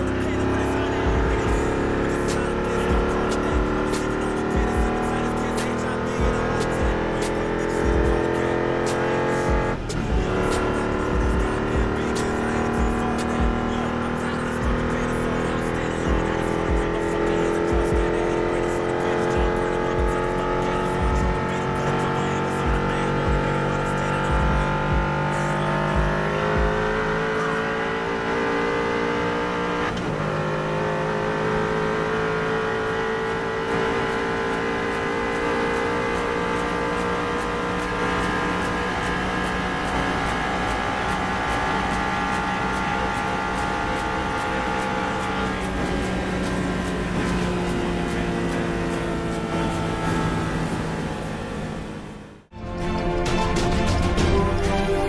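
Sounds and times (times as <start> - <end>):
car engine accelerating: 0.0 - 52.6.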